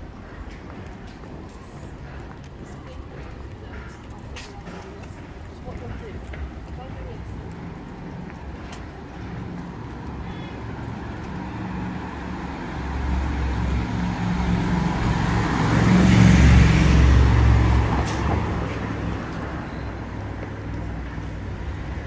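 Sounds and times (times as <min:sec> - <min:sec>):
town traffic: 0:00.0 - 0:22.0.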